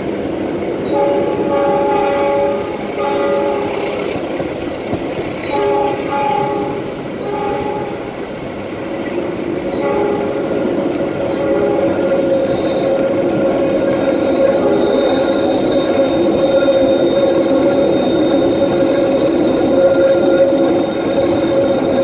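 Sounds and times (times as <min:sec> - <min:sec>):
train rumble and rail clatter: 0:00.0 - 0:22.0
train horn blasts: 0:00.8 - 0:04.1, 0:05.4 - 0:08.2, 0:09.7 - 0:22.0.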